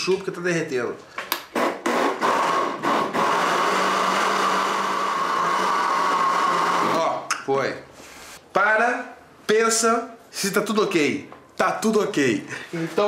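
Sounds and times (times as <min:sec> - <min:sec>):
blender running: 0:01.8 - 0:07.1.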